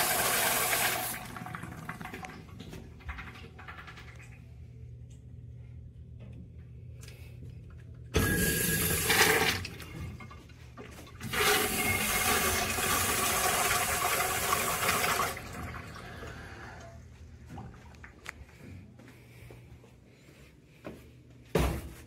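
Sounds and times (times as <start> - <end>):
urinal flushing: 0.0 - 5.2, 8.2 - 18.7.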